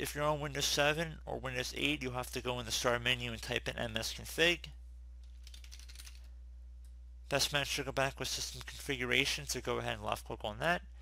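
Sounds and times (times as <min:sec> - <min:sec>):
steady low hum: 0:00.0 - 0:11.0
typing on keyboard: 0:05.3 - 0:06.2.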